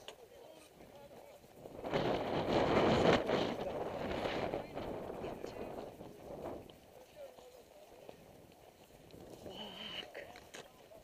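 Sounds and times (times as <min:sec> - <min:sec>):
wind rushing over microphone: 0:00.9 - 0:06.8.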